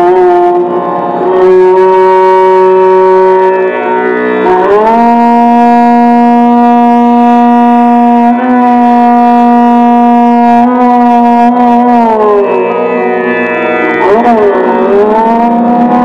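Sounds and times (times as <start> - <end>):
violin with long bowed notes: 0.0 - 16.0.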